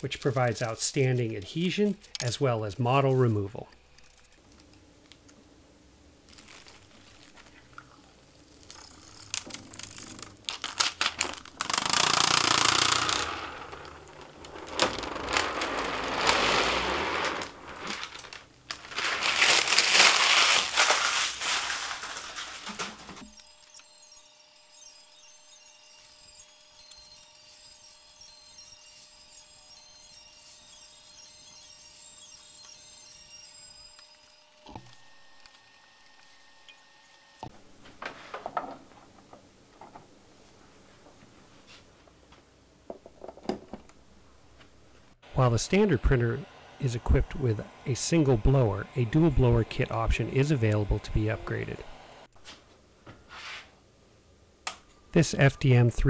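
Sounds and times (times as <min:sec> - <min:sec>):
plastic wrap crinkling: 0:06.2 - 0:23.4.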